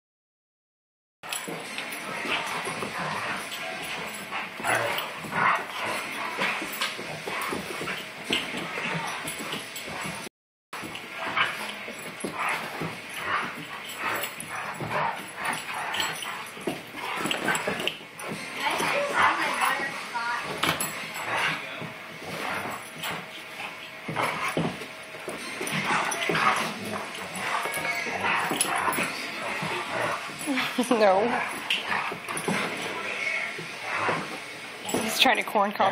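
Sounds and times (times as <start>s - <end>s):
dogs yipping and barking: 1.3s - 10.2s, 10.9s - 20.0s, 22.3s - 35.0s.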